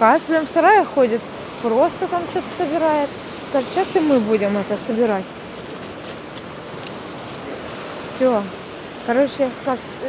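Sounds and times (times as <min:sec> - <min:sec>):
sea surf on pebble beach: 0:00.0 - 0:10.0.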